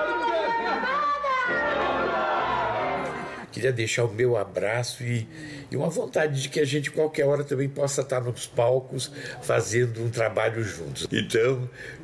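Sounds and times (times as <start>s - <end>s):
background music: 0.3s - 3.5s.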